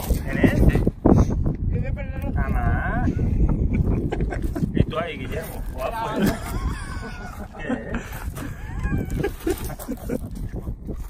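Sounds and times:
wind rumble on microphone: 0.0 - 11.0
people laughing and exclaiming: 2.9 - 10.3.

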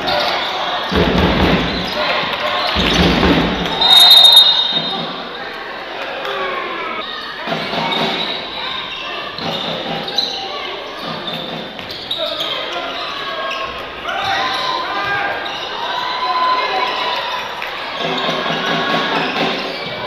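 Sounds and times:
voices in echoing hall: 0.0 - 20.0.

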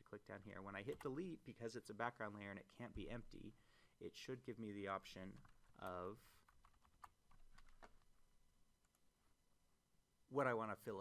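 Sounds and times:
person speaking: 0.0 - 6.6
computer keyboard clicks: 5.4 - 8.1.

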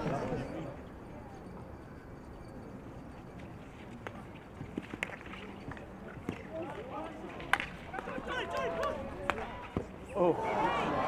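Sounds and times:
players shouting: 6.6 - 11.0.

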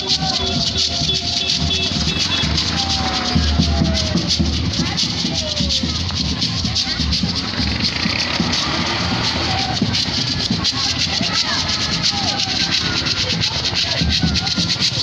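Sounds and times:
shakers rattling: 0.0 - 15.0
voices singing together: 0.0 - 15.0.

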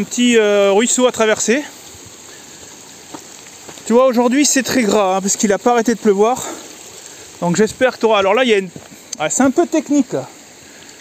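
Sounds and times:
water trickling over rocks: 0.0 - 11.0.

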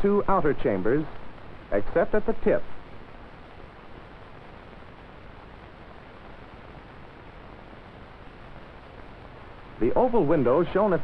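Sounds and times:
old film soundtrack hiss: 0.0 - 11.0.

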